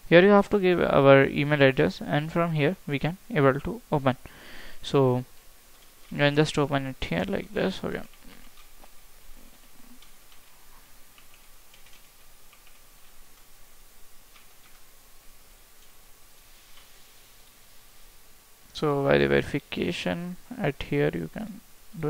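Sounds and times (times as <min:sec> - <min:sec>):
low steady hiss: 0:00.0 - 0:22.0
keyboard typing clicks: 0:11.1 - 0:13.5.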